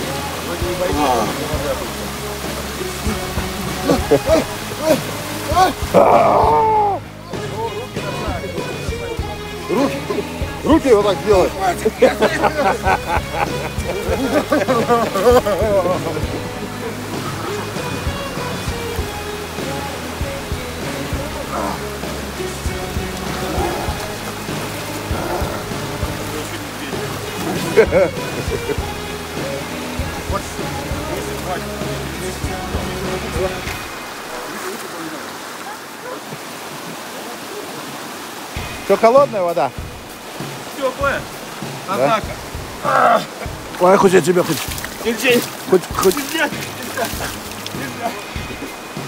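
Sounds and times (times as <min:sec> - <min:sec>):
background music: 0:00.0 - 0:35.5, 0:38.3 - 0:49.0
water rushing over rocks: 0:00.0 - 0:49.0
man speaking: 0:00.5 - 0:01.9, 0:07.4 - 0:17.0, 0:40.8 - 0:48.4.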